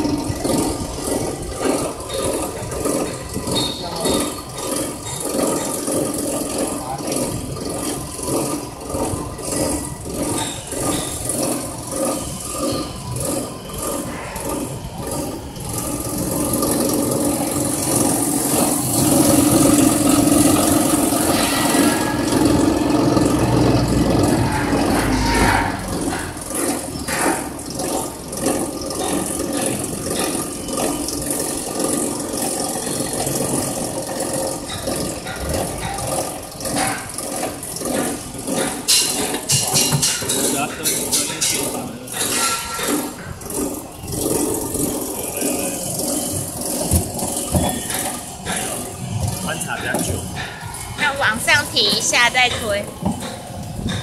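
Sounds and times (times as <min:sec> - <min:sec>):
processing machine rattling: 0:00.0 - 0:54.0.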